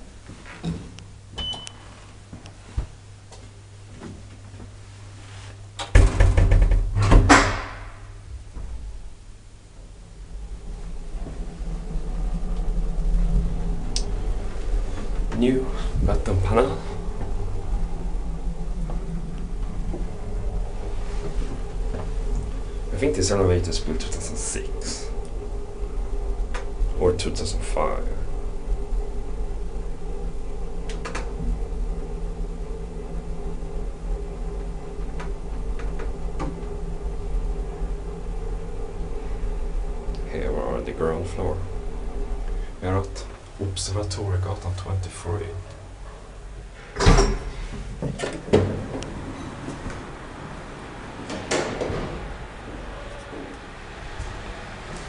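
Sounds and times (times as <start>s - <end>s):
elevator hydraulic drive rumble: 0.0s - 55.0s.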